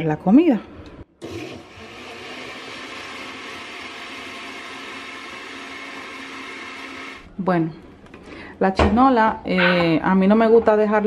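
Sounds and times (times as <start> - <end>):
blender running: 1.2 - 7.3.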